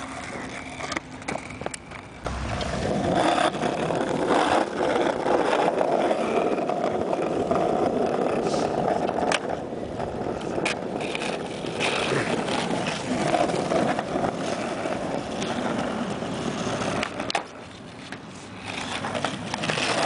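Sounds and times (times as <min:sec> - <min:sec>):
skateboard wheels rolling on concrete: 0:00.0 - 0:20.0.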